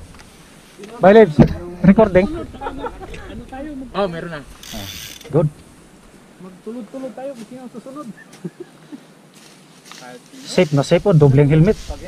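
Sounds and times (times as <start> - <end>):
bike freehub ratcheting clicks: 4.6 - 5.3.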